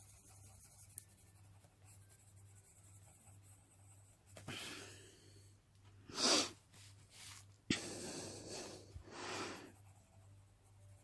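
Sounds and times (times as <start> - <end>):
coloured pencil rubbing on paper: 0.0 - 4.5, 9.5 - 11.0.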